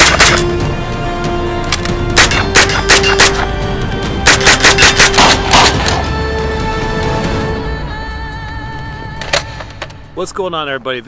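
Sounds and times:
pistol gunshots: 0:00.0 - 0:00.6, 0:01.8 - 0:03.6, 0:04.2 - 0:06.1
background music: 0:00.0 - 0:11.0.

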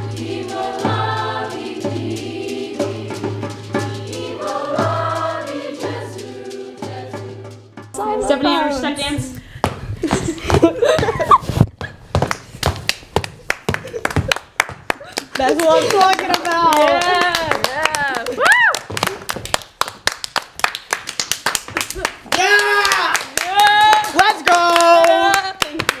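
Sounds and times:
people clapping: 0:12.2 - 0:26.0
excited voices whooping: 0:16.7 - 0:18.9, 0:22.3 - 0:25.5.

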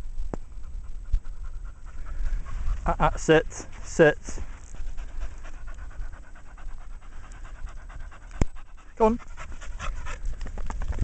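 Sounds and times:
dog panting: 0:00.5 - 0:10.9.

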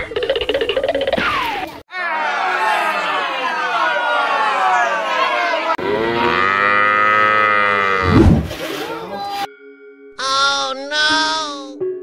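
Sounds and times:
cow mooing: 0:05.8 - 0:08.2.

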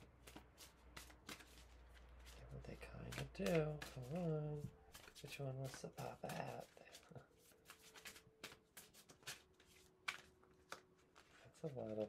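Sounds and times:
cards shuffled by hand: 0:00.2 - 0:12.0.

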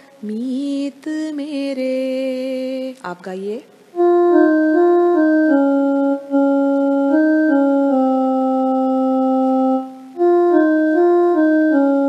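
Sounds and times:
electronic keyboard organ melody: 0:04.0 - 0:12.0.

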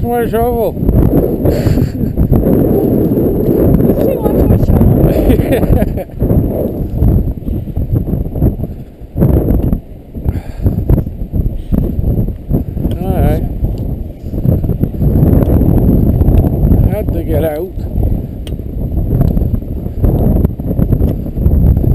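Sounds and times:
wind buffeting microphone: 0:00.0 - 0:21.9.

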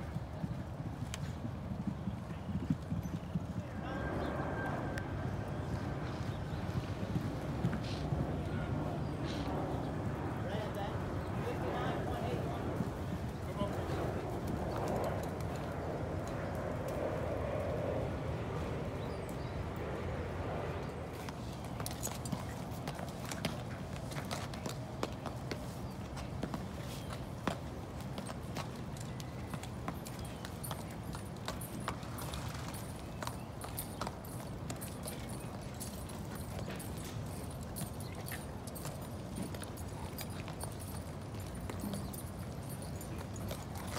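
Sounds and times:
horse hoofbeats on dirt: 0:00.0 - 0:17.9, 0:19.0 - 0:43.9
hooves clip-clopping on pavement: 0:00.0 - 0:43.9.

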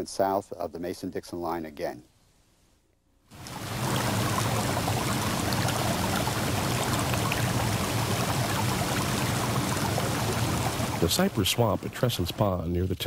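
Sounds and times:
stream water splashing over rocks: 0:03.4 - 0:12.6.

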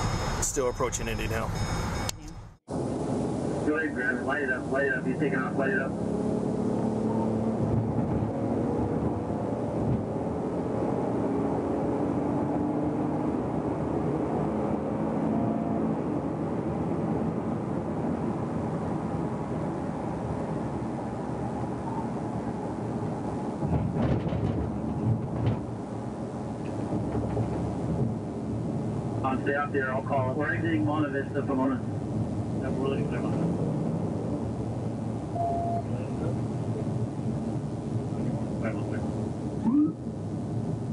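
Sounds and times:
car engine accelerating: 0:04.6 - 0:19.4.

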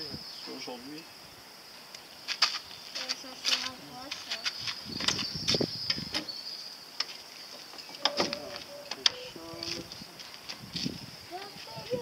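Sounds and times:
insect chirring: 0:00.0 - 0:12.0.

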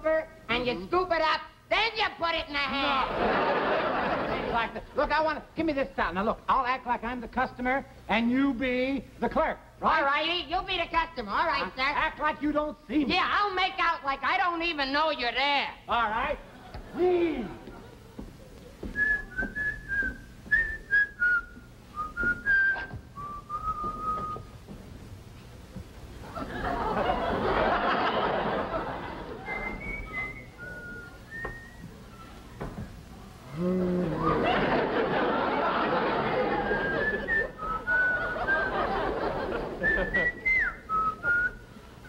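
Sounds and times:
man whistling a tune: 0:19.0 - 0:24.5, 0:29.5 - 0:32.4, 0:36.5 - 0:38.9, 0:39.8 - 0:41.7.

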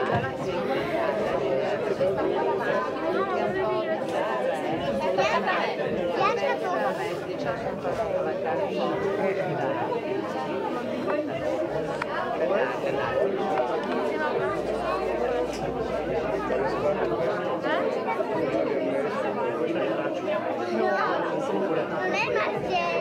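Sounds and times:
many people talking: 0:00.0 - 0:23.0.

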